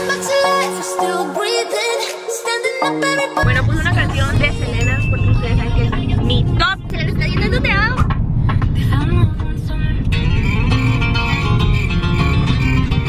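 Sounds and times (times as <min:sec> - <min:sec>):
woman singing pop song: 0:00.0 - 0:10.3
car interior rumble: 0:03.4 - 0:13.0.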